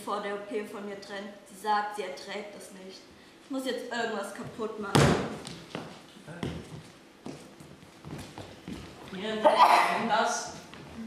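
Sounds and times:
footsteps on stage floor: 4.4 - 9.3, 10.4 - 11.0.

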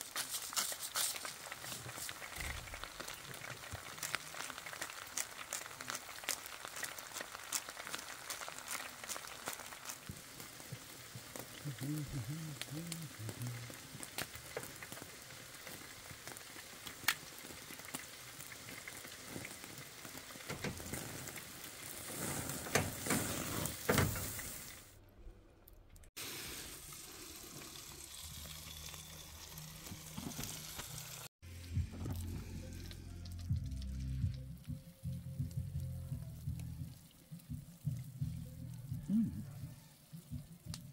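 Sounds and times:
steak sizzling on a grill: 0.0 - 24.8, 26.2 - 31.3.

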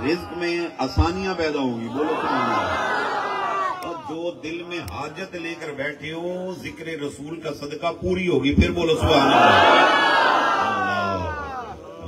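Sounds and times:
crowd of men chanting: 9.0 - 12.0.

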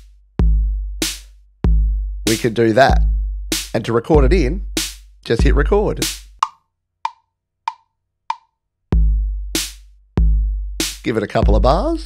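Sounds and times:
wood-block metronome clicks: 6.4 - 8.6.

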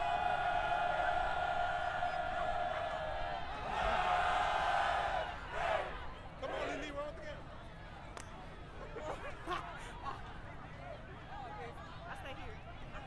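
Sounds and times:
voices shouting a long call: 0.0 - 6.9.

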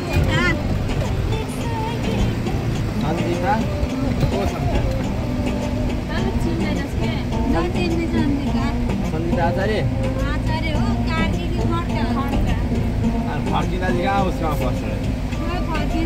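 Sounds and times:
moving vehicle rumble: 0.0 - 16.0
music: 0.0 - 16.0
people's voices: 0.0 - 16.0.

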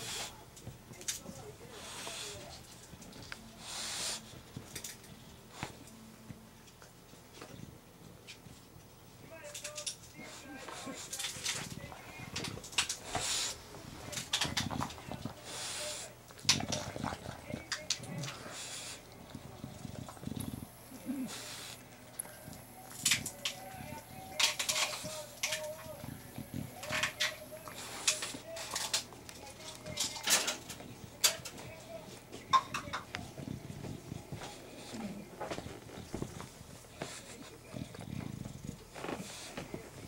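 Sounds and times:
dog breathing noisily: 0.0 - 0.5, 1.6 - 5.8, 10.1 - 40.0
dog grunting: 10.3 - 29.0, 29.6 - 40.0.

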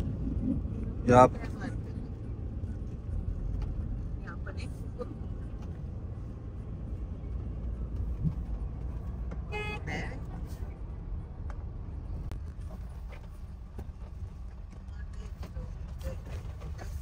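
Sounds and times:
car road rumble: 0.0 - 17.0
car horn toot: 9.5 - 10.1.

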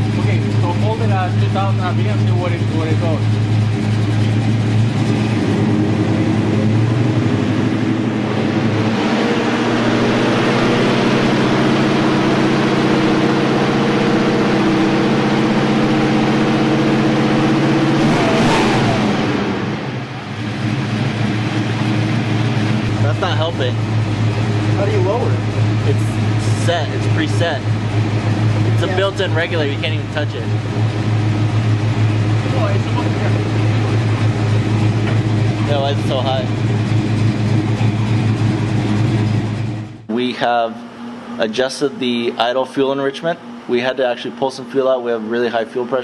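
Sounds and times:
car engine revving then idling: 0.0 - 46.0.

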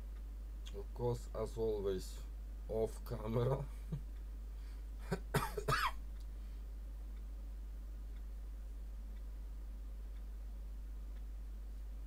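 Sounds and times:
person coughing: 5.0 - 6.0.

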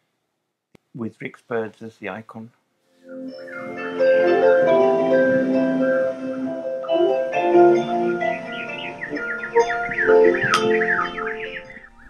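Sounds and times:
songbirds chirping: 3.0 - 12.0
harp melody: 3.1 - 12.0.

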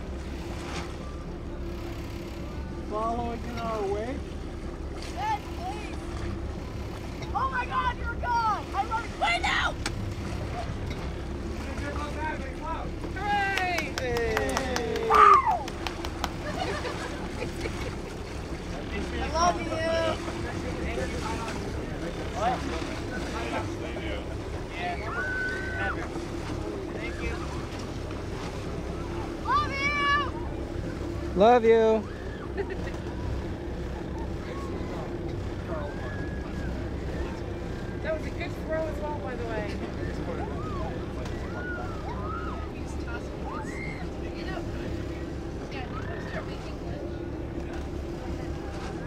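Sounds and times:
motorboat engine hum: 0.0 - 49.0
water noise: 0.0 - 49.0
wind: 0.0 - 49.0.

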